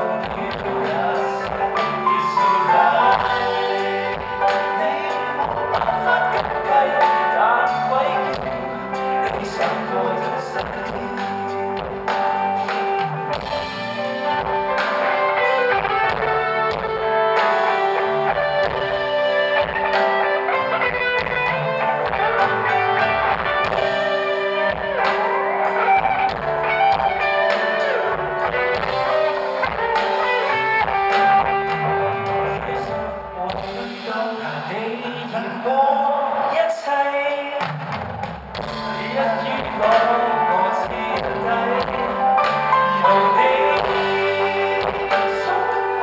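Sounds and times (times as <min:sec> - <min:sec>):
man singing lead: 0:00.0 - 0:37.8, 0:38.5 - 0:46.0
drums: 0:00.0 - 0:46.0
electric guitars: 0:00.0 - 0:46.0
man's voice: 0:00.0 - 0:46.0.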